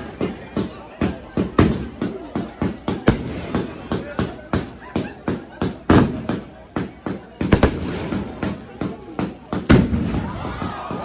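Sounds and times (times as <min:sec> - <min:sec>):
fireworks bangs: 0:00.0 - 0:11.0
fireworks crackling: 0:00.0 - 0:11.0.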